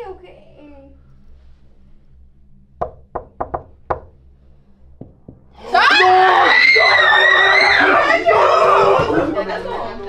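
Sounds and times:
knocks on a wooden door: 2.8 - 4.2, 5.0 - 5.5.

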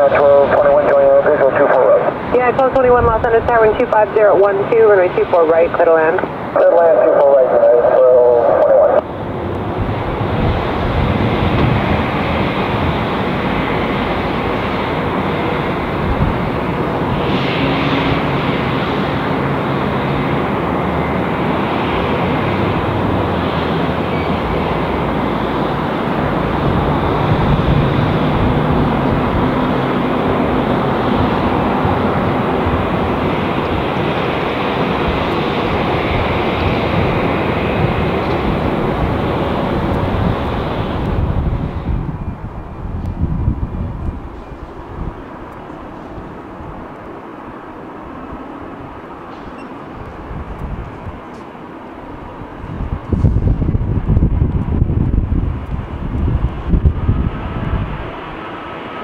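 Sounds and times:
jet engine roar at takeoff: 0.0 - 59.0.

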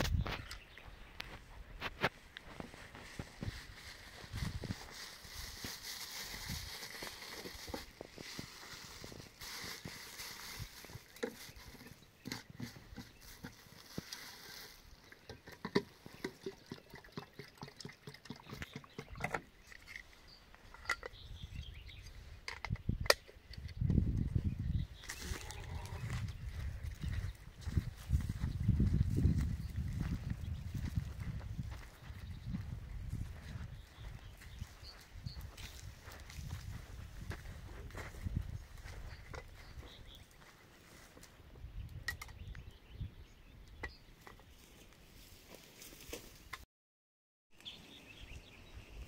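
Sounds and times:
footsteps on dry earth: 0.0 - 16.3, 23.8 - 41.7
low rumble on microphone: 23.8 - 34.8.

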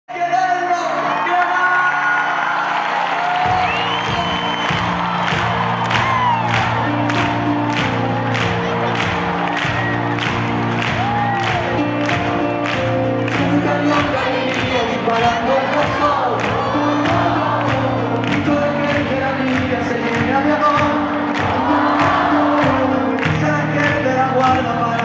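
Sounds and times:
crowd cheering and whistling: 0.4 - 23.7
live pop band playing: 3.2 - 25.0.

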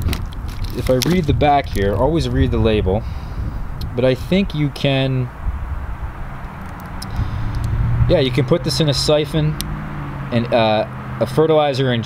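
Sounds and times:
outdoor background rumble: 0.0 - 12.0.

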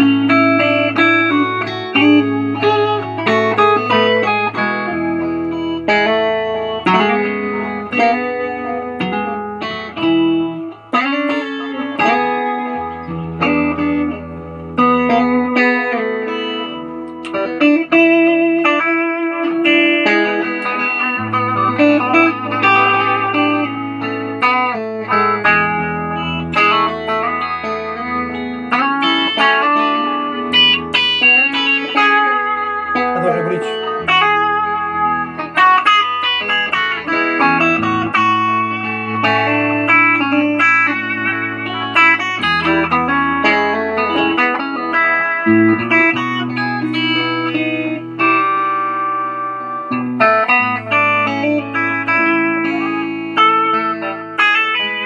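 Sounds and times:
electric guitar lead line: 0.0 - 55.0.

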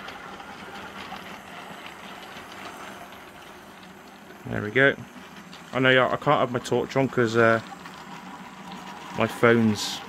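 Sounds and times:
model train wheels on track: 0.0 - 10.0.

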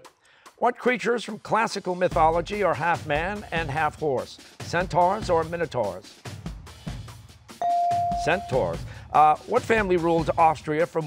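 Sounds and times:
electronic signal tone: 7.6 - 8.8
quiet background music: 7.6 - 11.0.

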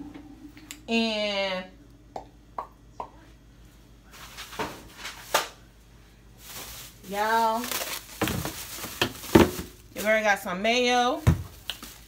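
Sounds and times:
plastic bag rustling: 6.3 - 12.0
items knocking on shelf: 8.2 - 9.8.

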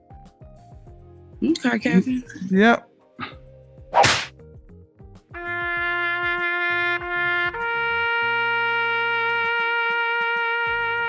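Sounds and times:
short sharp swish: 3.9 - 4.3.

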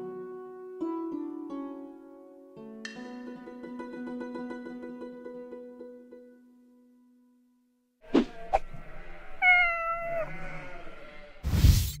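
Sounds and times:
cat meowing: 8.3 - 10.8.

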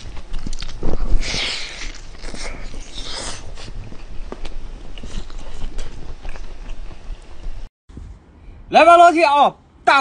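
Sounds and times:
person chewing and biting: 0.0 - 6.9.

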